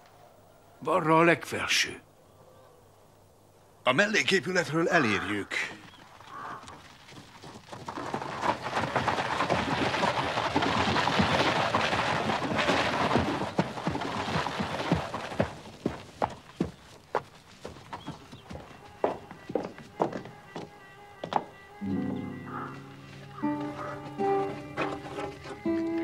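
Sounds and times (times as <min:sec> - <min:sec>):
horse hooves clopping: 0:05.0 - 0:26.0
carriage wheels crunching gravel: 0:05.6 - 0:26.0.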